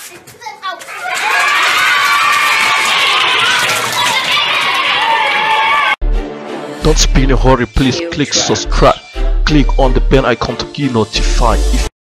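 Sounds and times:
children shouting: 0.7s - 6.0s.

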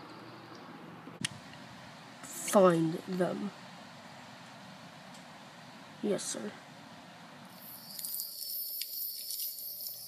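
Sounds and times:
campfire crackling: 0.0s - 10.0s.

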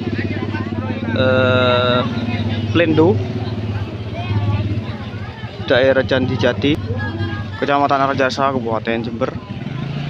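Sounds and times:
crowd chatter: 0.0s - 10.0s
motorcycle engines idling: 0.0s - 10.0s.

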